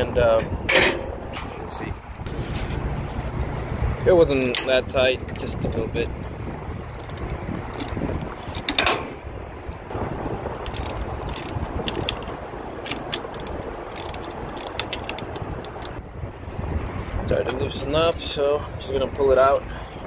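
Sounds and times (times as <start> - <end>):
wind rumble on microphone: 0.0 - 20.0
socket ratchet clicking: 10.6 - 16.0.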